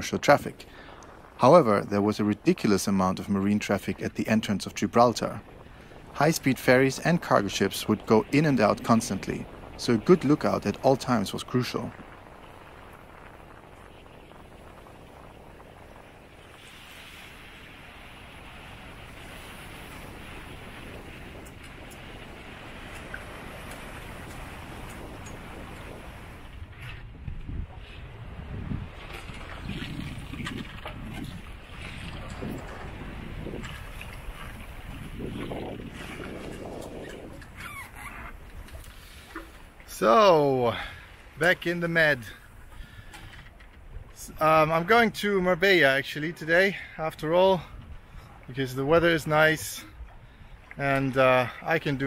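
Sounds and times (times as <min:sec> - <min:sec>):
choppy sea rushing: 0:00.0 - 0:52.0
wind: 0:00.0 - 0:52.0
wind gusts buffeting microphone: 0:00.0 - 0:52.0.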